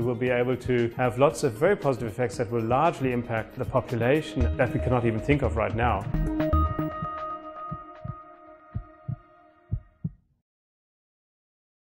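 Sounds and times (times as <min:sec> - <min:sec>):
held music tone: 0:00.2 - 0:10.0
heartbeat thumps: 0:06.0 - 0:08.2, 0:08.8 - 0:10.2.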